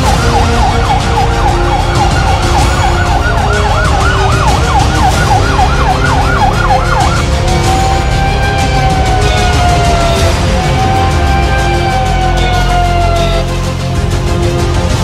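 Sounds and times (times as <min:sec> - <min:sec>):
fire truck siren yelping: 0:00.0 - 0:13.6.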